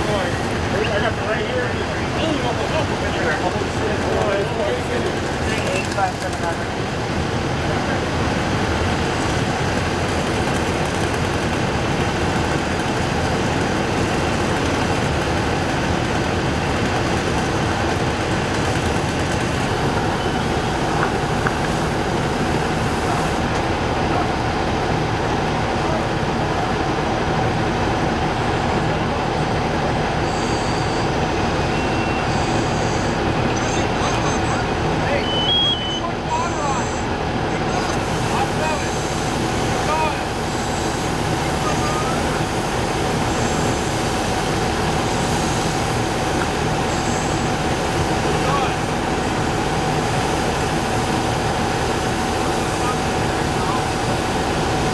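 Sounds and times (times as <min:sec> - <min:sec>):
fire engine pump running: 0:00.0 - 0:54.9
fire hose spraying water: 0:07.6 - 0:24.0, 0:37.4 - 0:54.9.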